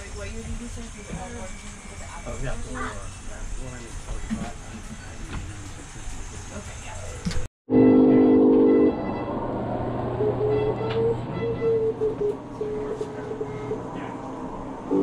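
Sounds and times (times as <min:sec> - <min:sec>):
loud horn-like chord: 0:07.7 - 0:12.0
higher tone: 0:07.7 - 0:14.0.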